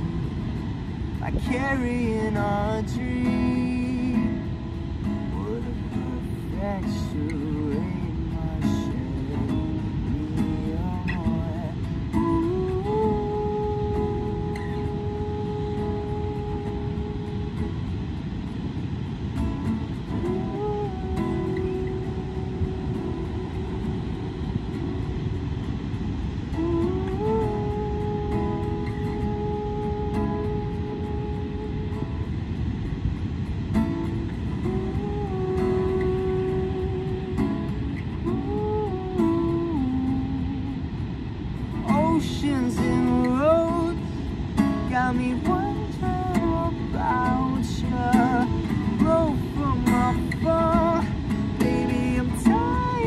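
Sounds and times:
acoustic guitar strumming: 0.0s - 53.0s
surf and wind rushing: 0.0s - 53.0s.

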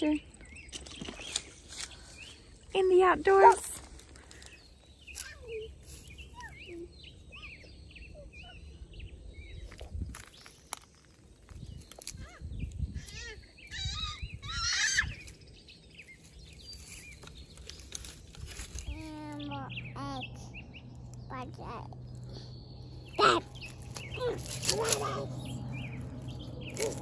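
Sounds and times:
small birds chirping: 0.0s - 27.0s
child squealing: 12.2s - 15.2s, 23.2s - 23.5s.

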